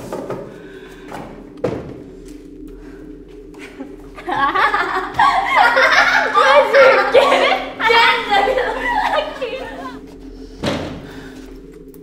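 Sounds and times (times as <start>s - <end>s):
low hum of held tones: 0.2s - 12.0s.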